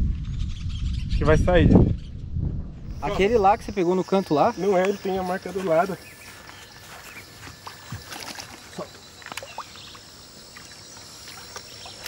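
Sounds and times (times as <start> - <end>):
fish splashing in water: 7.3 - 12.0.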